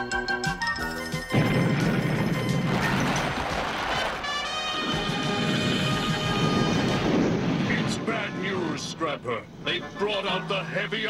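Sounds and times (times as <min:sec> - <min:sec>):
dramatic music score: 0:01.2 - 0:11.0
crashing rumbling din: 0:01.3 - 0:08.4.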